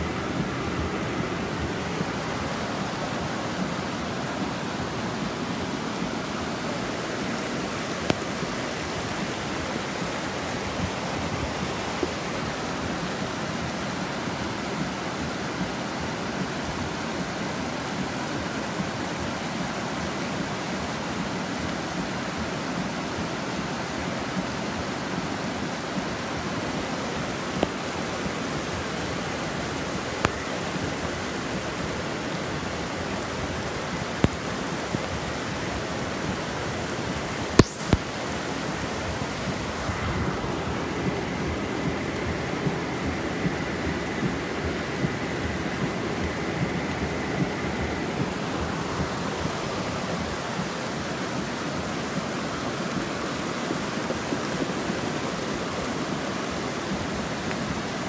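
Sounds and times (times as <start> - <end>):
floodwater pouring down street: 0.0 - 58.0
heavy rain: 0.0 - 58.0
sharp taps: 37.6 - 38.1.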